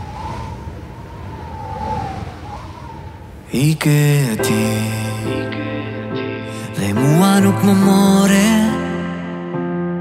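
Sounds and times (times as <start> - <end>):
distant siren wavering: 0.0 - 3.6.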